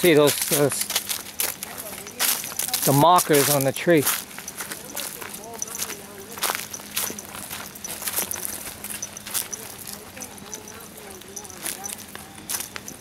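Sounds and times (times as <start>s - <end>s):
footsteps crunching dry leaves: 0.0s - 13.0s.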